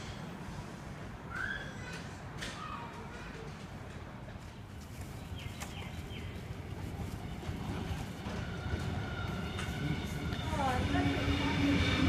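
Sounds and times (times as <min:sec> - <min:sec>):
electric train rumble: 0:05.9 - 0:12.0.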